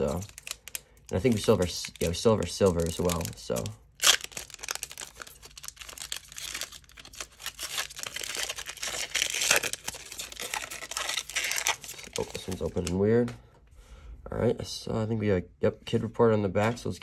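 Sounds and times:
foil wrapper ripping: 0.0s - 12.9s
foil wrapper crinkling: 0.0s - 13.0s.

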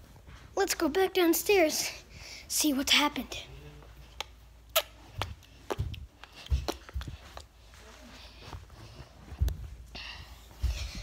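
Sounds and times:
footsteps walking: 5.0s - 11.0s.

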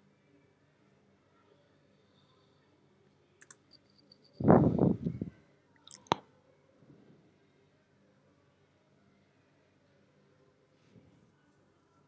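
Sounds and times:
computer mouse clicks: 3.4s - 3.8s.

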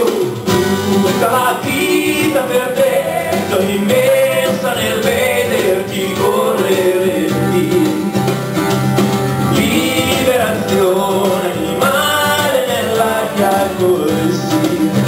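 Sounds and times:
man singing: 0.0s - 8.3s, 9.4s - 15.0s
acoustic guitar: 0.0s - 15.0s.

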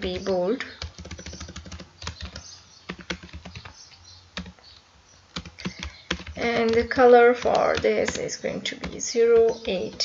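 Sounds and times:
typing on computer keyboard: 0.0s - 3.7s, 4.4s - 4.6s, 5.4s - 10.0s.

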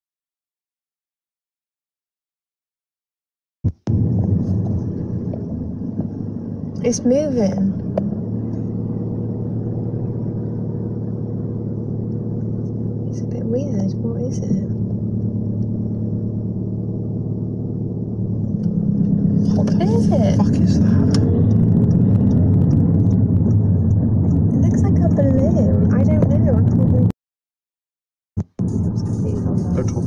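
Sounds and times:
low rumbling hum: 3.7s - 27.2s, 28.4s - 30.0s.

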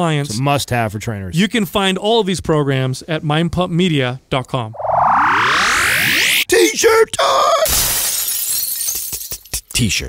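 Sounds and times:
glass shattering crash: 7.6s - 9.6s.

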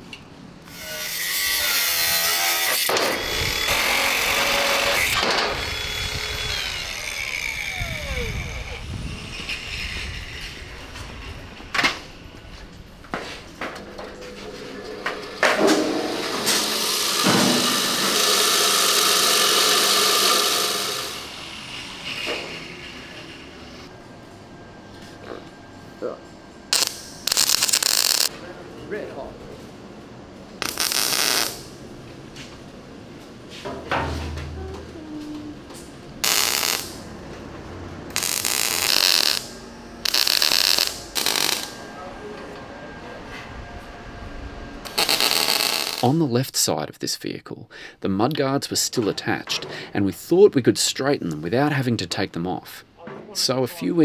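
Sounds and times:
power tools grinding steel: 0.7s - 11.7s, 13.8s - 23.9s, 26.7s - 28.3s, 36.2s - 37.1s, 38.1s - 42.0s, 44.8s - 46.1s
belt grinder running: 2.8s - 10.2s, 16.4s - 23.2s, 26.8s - 28.3s, 36.2s - 37.0s, 38.1s - 41.8s
welding spurts: 26.7s - 28.3s, 30.6s - 31.8s, 36.2s - 37.1s, 38.1s - 41.8s, 44.8s - 46.1s.

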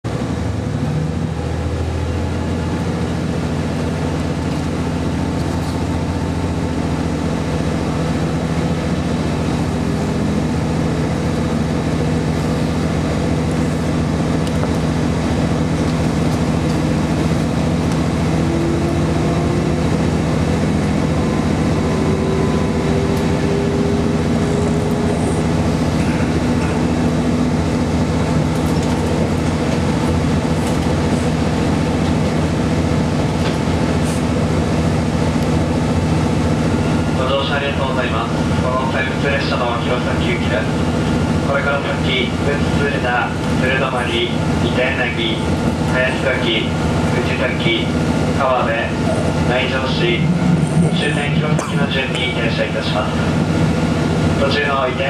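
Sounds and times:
diesel engine drone: 0.0s - 55.0s
rising whine: 15.4s - 29.3s.

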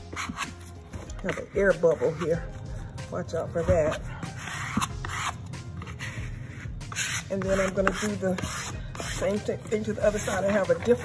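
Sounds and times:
squeegee scraping across paper: 3.5s - 11.0s.

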